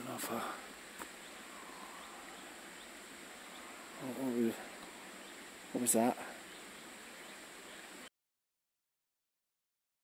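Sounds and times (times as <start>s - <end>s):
faint outdoor background hiss: 0.0s - 8.1s.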